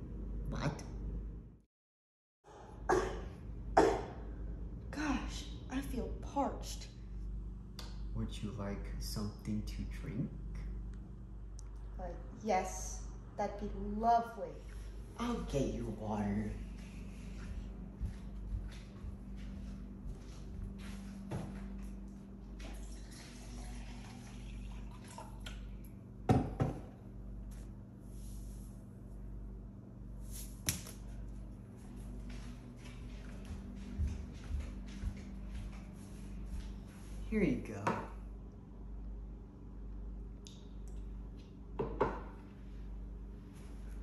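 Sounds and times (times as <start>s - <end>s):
steady low hum: 2.5s - 44.0s
cups knocking on counter: 26.3s - 26.9s, 41.8s - 42.3s.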